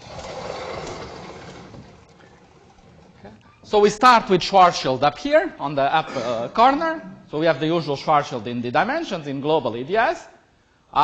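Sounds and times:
blackboard panels sliding: 0.0 - 3.7.

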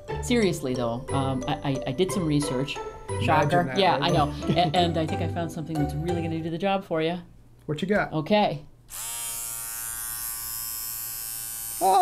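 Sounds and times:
trimmer motor buzzing: 8.9 - 12.0.

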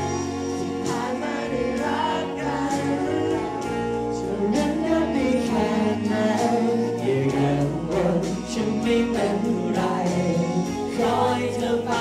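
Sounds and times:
amplified backing music: 0.0 - 12.0
man singing into a microphone: 0.8 - 12.0.

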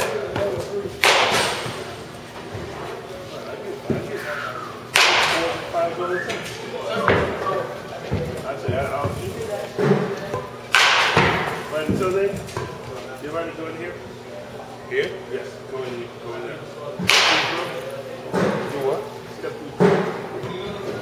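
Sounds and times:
baseball bat cracking ball: 1.0 - 2.0, 4.9 - 5.6, 10.7 - 11.6, 17.0 - 17.7.

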